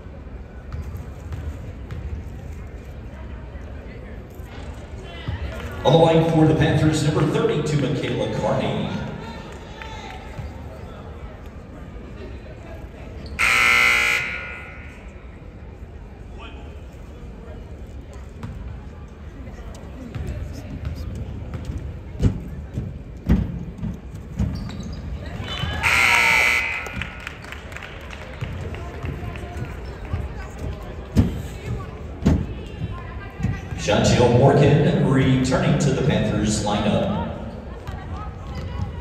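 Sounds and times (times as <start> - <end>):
basketball bouncing on court: 0.7 - 2.2, 20.0 - 25.0
scoreboard buzzer: 13.4 - 15.2, 25.8 - 27.4.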